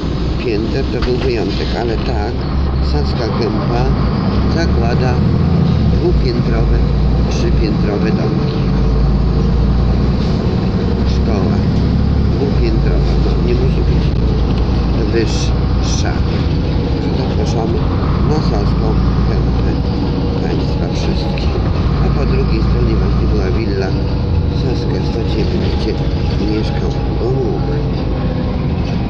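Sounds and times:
road noise: 0.0 - 29.0
vehicle engine rumble: 0.0 - 29.0
people talking: 0.4 - 5.2, 5.9 - 8.7, 11.0 - 11.7, 12.3 - 14.3, 15.0 - 16.4, 17.1 - 19.8, 20.4 - 24.0, 24.6 - 27.9.

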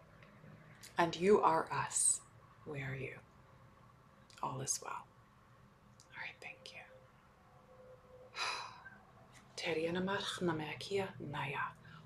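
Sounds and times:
woman whispering and speaking softly: 6.0 - 7.1, 9.5 - 11.9.

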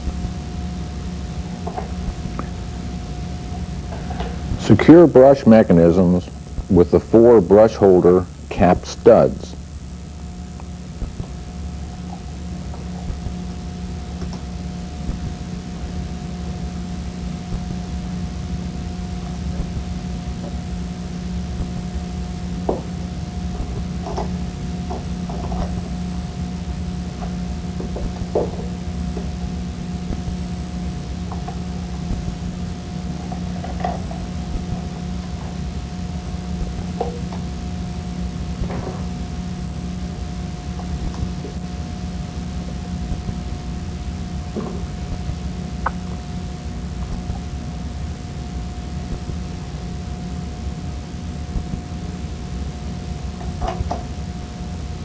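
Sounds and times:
low background hum: 0.0 - 55.0.

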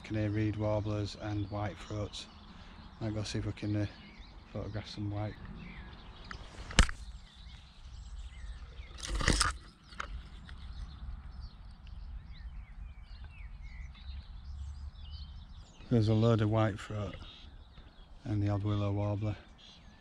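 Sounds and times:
warblers chirping: 0.0 - 20.0
sharp click: 6.2 - 7.1, 8.9 - 10.6.

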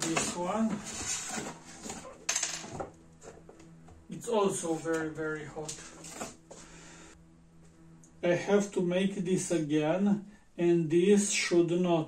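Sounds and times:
cardboard box scraping and rustling: 0.0 - 2.2.

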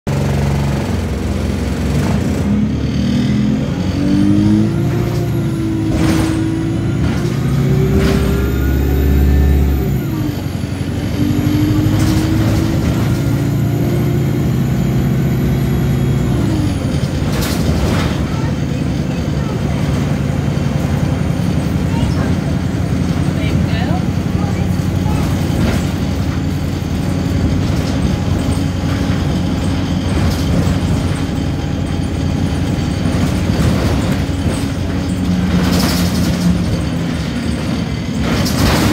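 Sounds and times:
bus diesel engine: 0.0 - 38.9.

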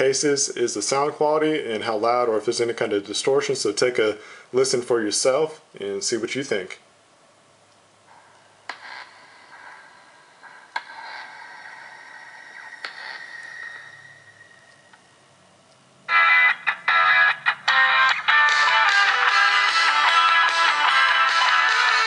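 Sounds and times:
clicks: 7.7 - 9.8, 10.4 - 11.3
faint sound effects: 8.1 - 15.4
music from phone loudspeaker: 8.7 - 13.8, 16.1 - 22.0.

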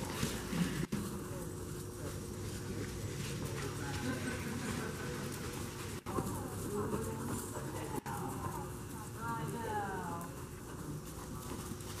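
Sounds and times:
horse hoofbeats on soft dirt: 0.0 - 12.0.

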